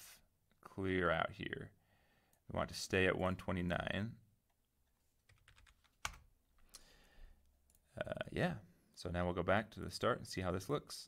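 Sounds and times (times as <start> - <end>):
computer keyboard keystrokes: 5.3 - 6.3.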